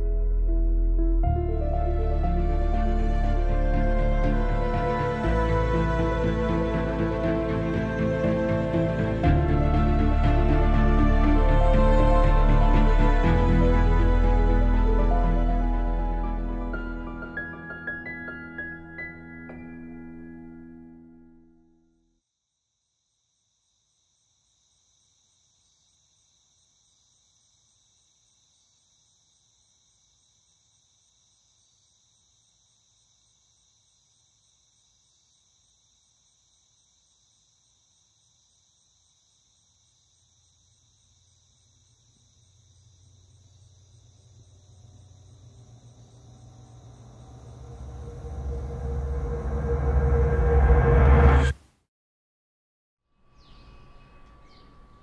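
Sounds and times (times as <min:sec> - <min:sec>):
crickets chirring: 0:22.6 - 0:51.3
low rumbling: 0:46.6 - 0:51.6.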